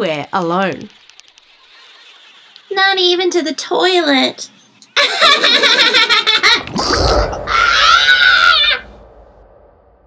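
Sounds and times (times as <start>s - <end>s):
low thud: 6.6s - 10.0s.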